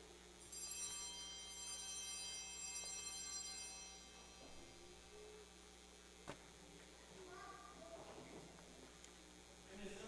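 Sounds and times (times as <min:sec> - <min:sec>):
cluster of small bells ringing: 0:00.4 - 0:05.1.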